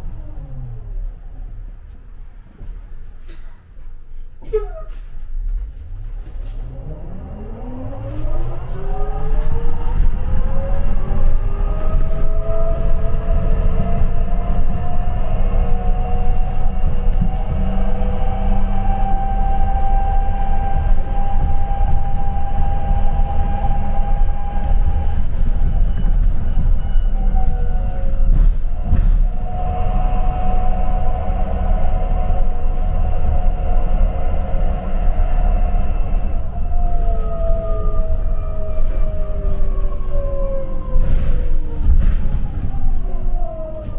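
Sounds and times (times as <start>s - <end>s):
bus drivetrain whine: 0.0s - 43.9s
road rumble: 0.0s - 43.9s.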